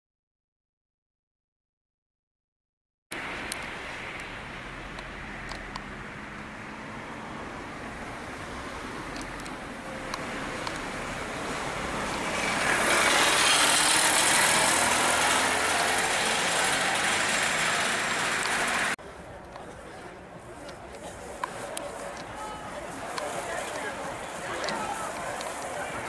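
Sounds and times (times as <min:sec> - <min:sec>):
road traffic hiss and rumble: 0:03.1 - 0:26.0.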